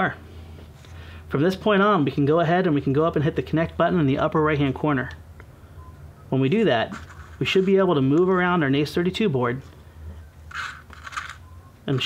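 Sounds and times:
soft handling rustles: 0:06.8 - 0:08.3.

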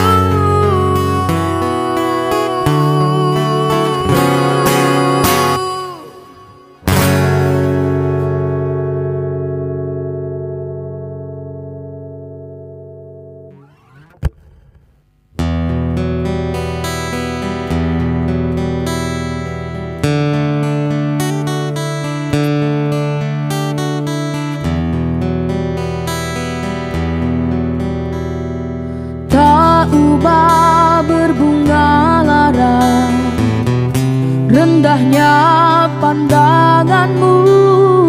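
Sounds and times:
acoustic guitar chords: 0:00.0 - 0:38.0.

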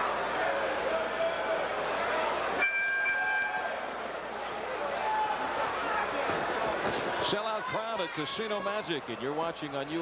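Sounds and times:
arena crowd noise: 0:00.0 - 0:10.0
high round signal tones: 0:02.6 - 0:03.6.

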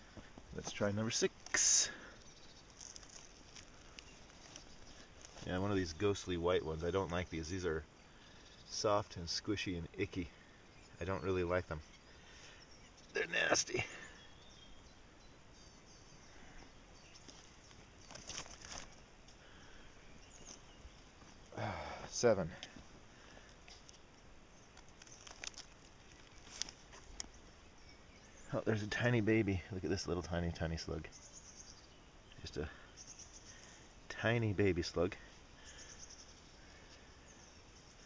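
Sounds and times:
faint garden ambience: 0:00.0 - 0:38.0
faint outdoor hiss: 0:00.0 - 0:38.0
footsteps on soil and leaves: 0:00.1 - 0:06.3, 0:17.1 - 0:19.4, 0:20.2 - 0:27.5.

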